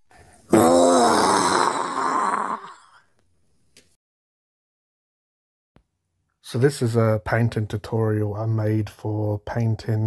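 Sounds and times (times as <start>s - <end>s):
person groaning: 0.5s - 3.0s.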